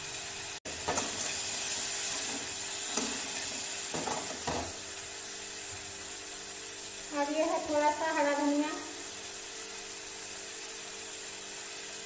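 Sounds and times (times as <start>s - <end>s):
vegetables sizzling in a pan: 0.0s - 12.0s
spatula scraping a pan: 0.8s - 5.5s.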